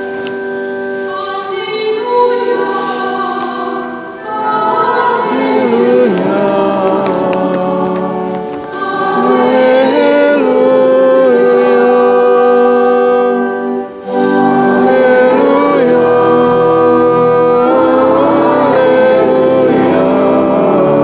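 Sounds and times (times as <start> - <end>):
congregation singing a hymn: 0.0 - 21.0.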